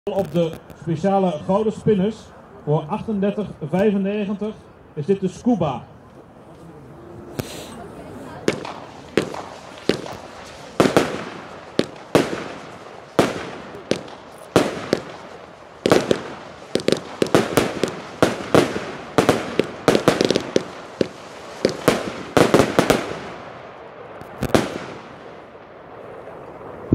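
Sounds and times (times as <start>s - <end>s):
firework cake bangs: 8.4s - 23.5s.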